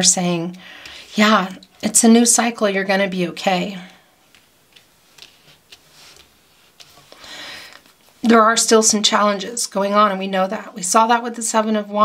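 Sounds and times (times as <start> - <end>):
cards clicking on wooden table: 4.2 - 8.0.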